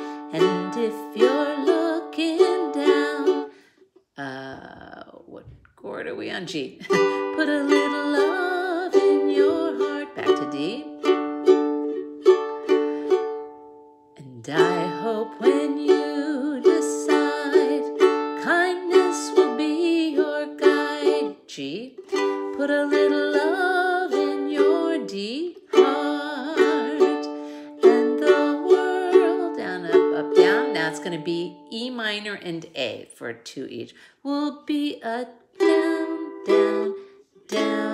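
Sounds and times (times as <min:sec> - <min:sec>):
woman singing: 0:00.0 - 0:03.5, 0:04.2 - 0:11.1, 0:14.2 - 0:37.9
ukulele strumming chords: 0:00.0 - 0:03.6, 0:06.6 - 0:32.1, 0:35.6 - 0:37.9.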